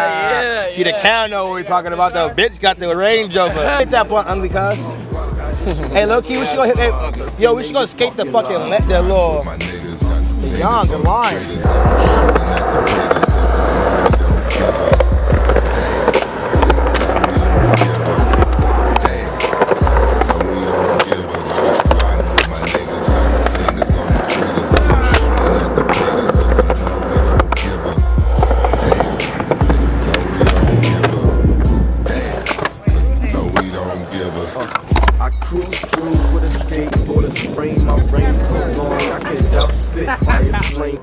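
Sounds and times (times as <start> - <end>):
skateboard wheels rolling on concrete: 0.0 - 41.0
hip hop beat with heavy bass: 0.7 - 41.0
skateboard clacks: 10.9 - 41.0.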